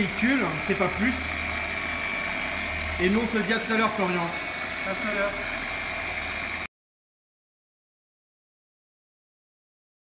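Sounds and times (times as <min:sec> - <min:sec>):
machine polisher whining: 0:00.0 - 0:06.7.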